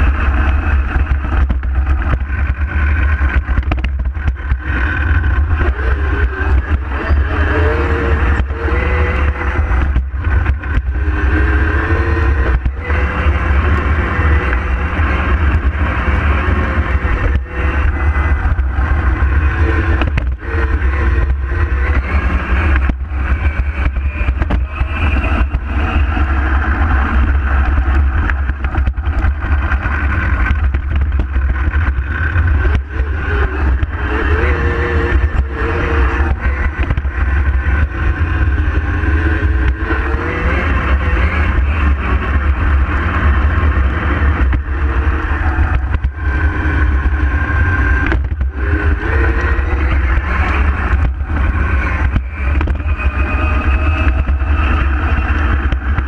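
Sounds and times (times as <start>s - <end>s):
electric motor whine: 0.0s - 56.0s
wind rumble: 0.0s - 56.0s.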